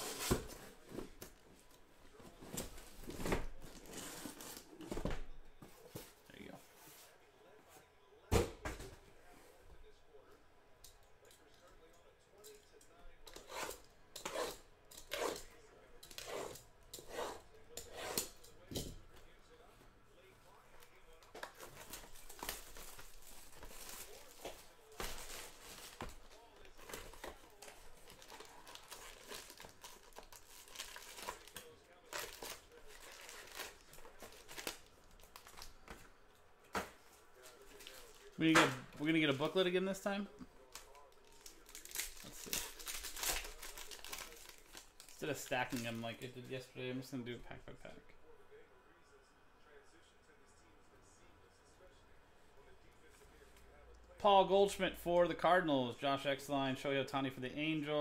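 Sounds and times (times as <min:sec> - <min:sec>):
plastic wrap tearing and crinkling: 0:21.8 - 0:35.8, 0:40.7 - 0:46.0.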